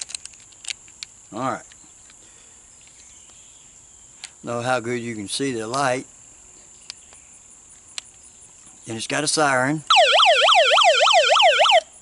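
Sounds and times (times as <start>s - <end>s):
electronic siren warble: 9.9s - 11.9s.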